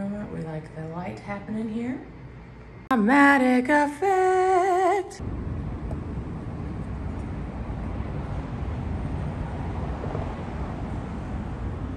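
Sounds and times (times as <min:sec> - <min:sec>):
distant traffic rumble: 0:05.2 - 0:11.9
wind buffeting microphone: 0:05.2 - 0:11.9.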